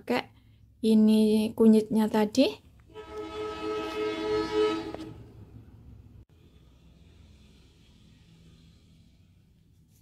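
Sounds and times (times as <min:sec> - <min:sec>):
horn blast: 0:02.9 - 0:05.7.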